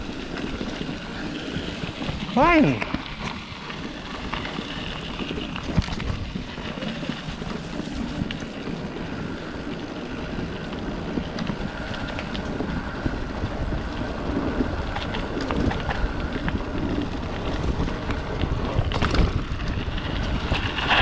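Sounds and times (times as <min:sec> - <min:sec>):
bike clicks and rattles: 0:00.0 - 0:21.0
bike tyres rolling on dirt: 0:00.0 - 0:21.0
wind buffeting microphone: 0:00.0 - 0:21.0.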